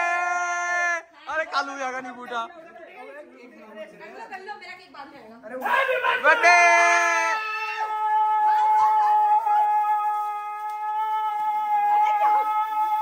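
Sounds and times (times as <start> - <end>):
people shouting: 5.6 - 13.0.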